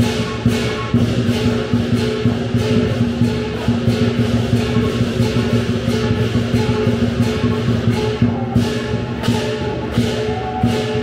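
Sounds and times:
cymbals crashing: 0:00.0 - 0:11.0
drum rhythm: 0:00.0 - 0:11.0
gong ringing: 0:00.0 - 0:11.0.

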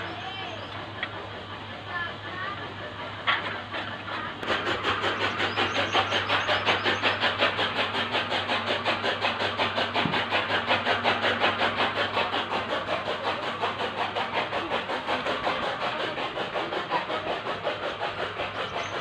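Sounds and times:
machine running with rapid pulses: 0:00.0 - 0:19.0.

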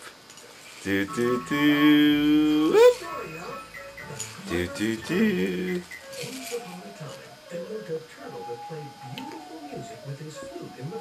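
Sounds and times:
quiet background music: 0:00.6 - 0:11.0.

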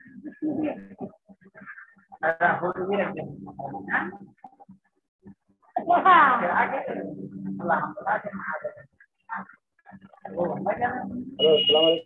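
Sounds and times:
indistinct voices over video call: 0:00.0 - 0:12.0.

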